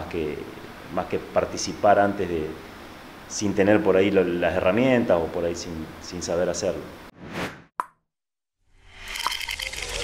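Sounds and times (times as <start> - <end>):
short whoosh: 7.2 - 7.7.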